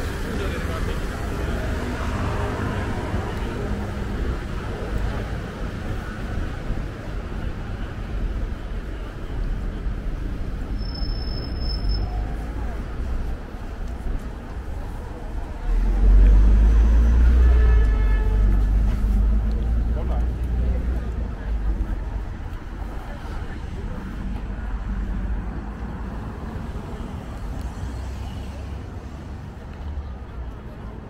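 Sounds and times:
vehicle engine rumble passing: 12.0 - 30.9.

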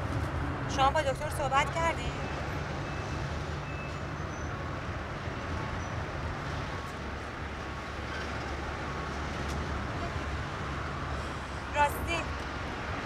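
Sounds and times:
road and engine rumble in car: 0.0 - 13.0.

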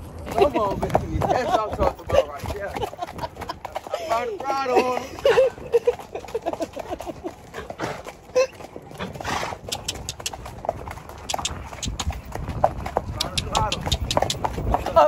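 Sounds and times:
hooves clip-clopping on dirt: 0.0 - 15.0.

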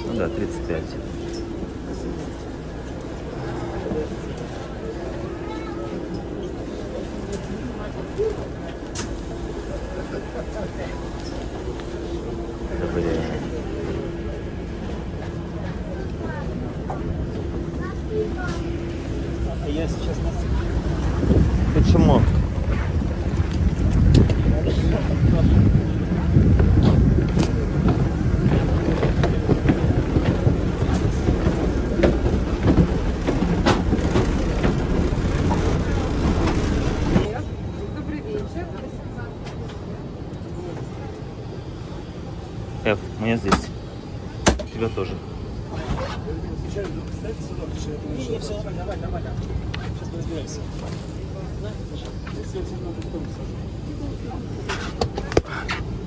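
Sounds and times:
aircraft cabin hum: 6.4 - 37.4
wind on microphone: 20.7 - 37.3
footsteps on metal stairs: 27.8 - 37.4.

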